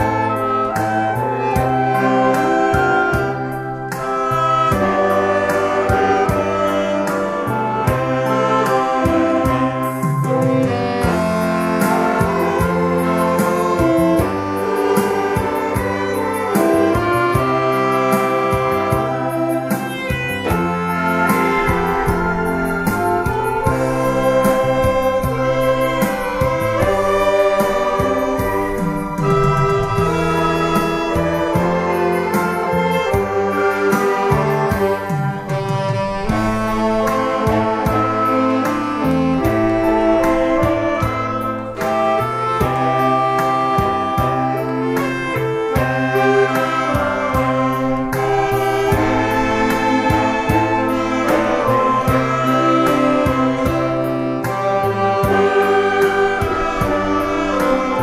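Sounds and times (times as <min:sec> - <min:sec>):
saxophone ensemble playing slow melody: 0:00.0 - 0:58.0
steady drum beat: 0:00.0 - 0:58.0.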